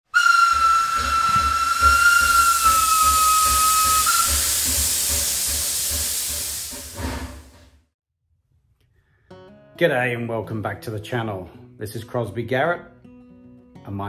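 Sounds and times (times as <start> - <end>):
steam locomotive whistle: 0.0 - 7.1
hissing steam: 0.1 - 7.7.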